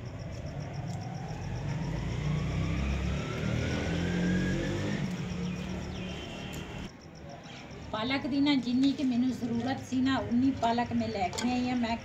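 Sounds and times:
vehicle engine whine rising: 0.6 - 6.9.

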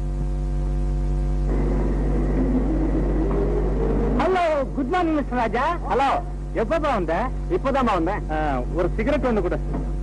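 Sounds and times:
film soundtrack hum and hiss: 0.0 - 10.0
rough rumbling noise: 1.5 - 6.3.

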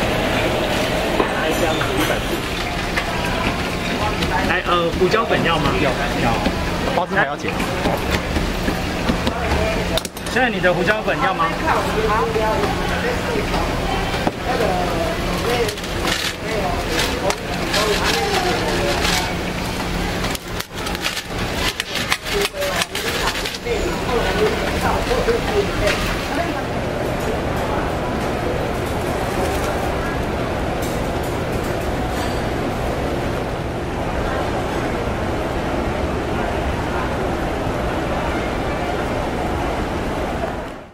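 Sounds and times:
voices in background: 0.0 - 40.9
paper bags crinkling: 14.5 - 26.5.

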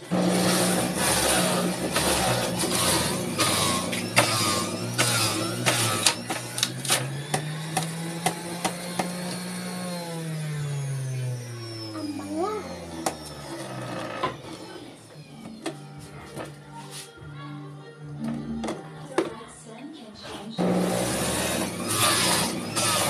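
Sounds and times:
juicer motor whirring: 0.0 - 15.9, 20.6 - 23.0.

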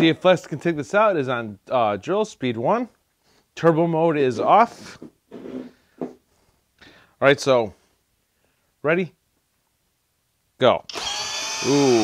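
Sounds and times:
hand handling a drill: 10.9 - 12.0.

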